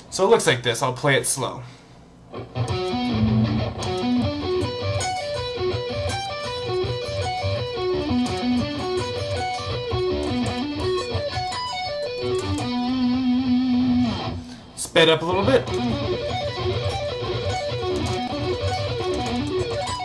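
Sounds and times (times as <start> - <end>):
electric guitar arpeggios: 2.3 - 14.6, 15.3 - 20.0.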